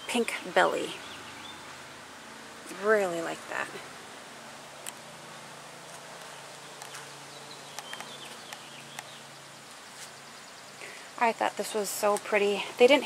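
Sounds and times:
steady low hum: 0.0s - 13.0s
faint bird chirps: 6.6s - 11.2s.

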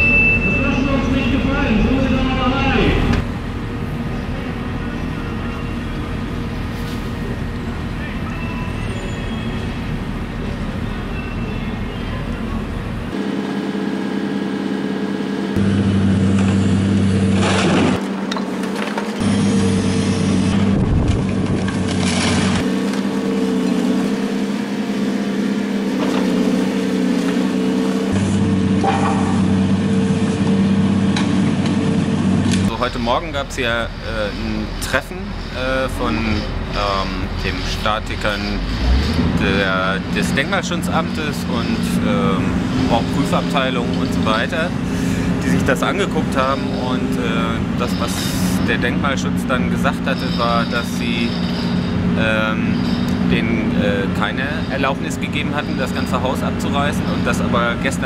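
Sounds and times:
excavator diesel engine hum: 0.0s - 58.0s.

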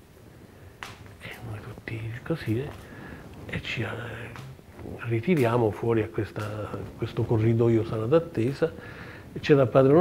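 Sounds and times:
man speaking: 1.2s - 2.8s, 3.5s - 8.8s, 9.4s - 10.0s.

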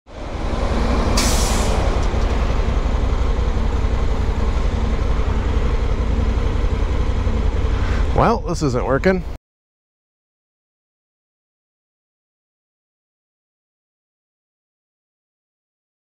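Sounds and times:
motorcycle engine idling: 1.9s - 8.4s.

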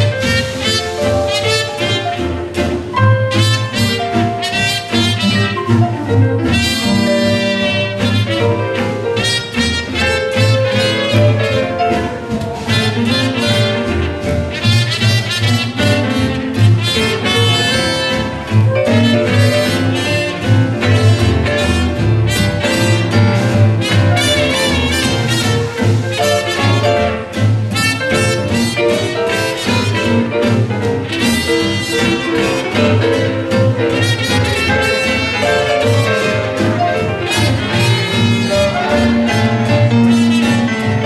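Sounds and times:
clarinet: 0.0s - 41.0s
drums: 0.0s - 41.0s
jazz band playing live: 0.0s - 41.0s
piano: 0.0s - 41.0s
reed horn: 0.0s - 41.0s
trumpet: 0.0s - 41.0s
upright bass plucking: 0.0s - 41.0s
guitar: 11.2s - 14.8s.

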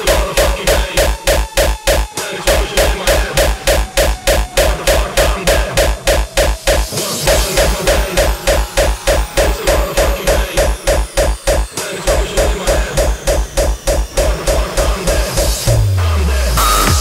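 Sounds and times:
heavy kick drum: 0.0s - 17.0s
synth stab: 0.0s - 17.0s.

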